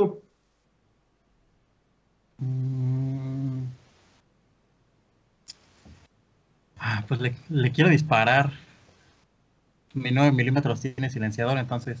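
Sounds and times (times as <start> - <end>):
man humming hesitantly: 2.4 - 3.8.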